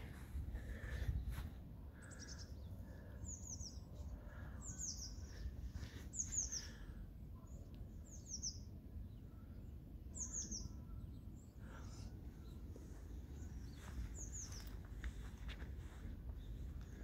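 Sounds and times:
songbird calling: 1.9 - 15.2.

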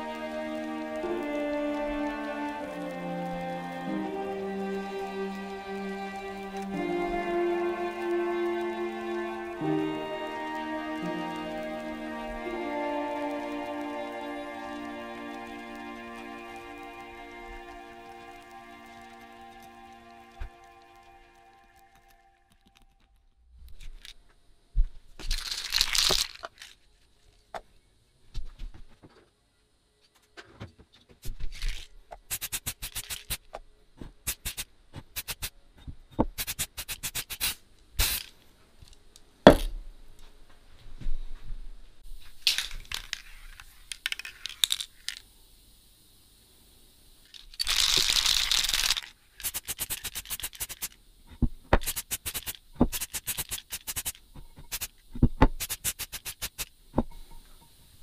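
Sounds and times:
spray paint can hissing: 0.0 - 21.0, 25.3 - 26.5, 31.7 - 35.5, 36.2 - 38.4, 42.4 - 45.3, 47.2 - 57.1.

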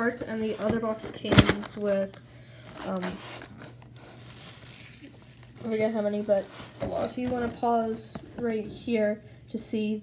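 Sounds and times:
low steady hum: 0.0 - 10.0
cardboard box rustling: 3.0 - 8.0.

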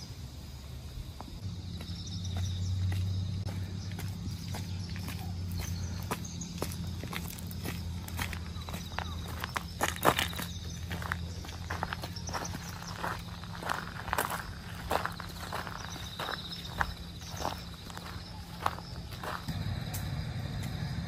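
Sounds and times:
footsteps on paved ground: 0.9 - 21.0
footsteps on gravel: 1.1 - 21.0.

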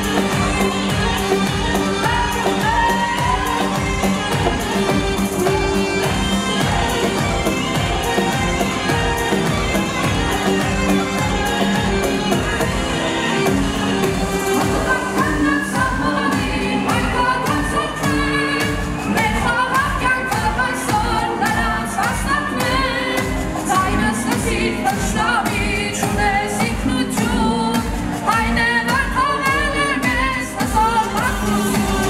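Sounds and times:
amplified dance music: 0.0 - 32.0.

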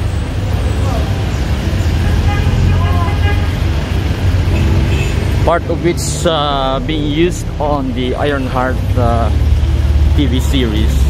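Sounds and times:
car engines rumbling: 0.0 - 11.0.

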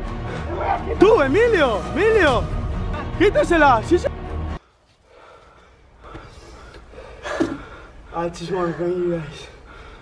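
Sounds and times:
man breathing hard and gasping: 4.6 - 10.0.

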